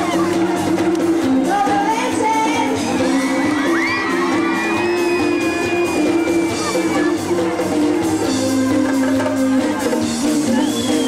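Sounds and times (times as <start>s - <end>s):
crowd whooping: 0.0s - 1.4s, 2.8s - 9.0s, 10.3s - 11.0s
live pop band playing: 0.0s - 11.0s.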